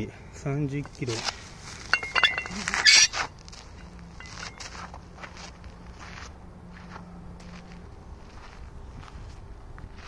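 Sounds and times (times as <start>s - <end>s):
sneaker footsteps on gritty dirt: 0.9s - 10.0s.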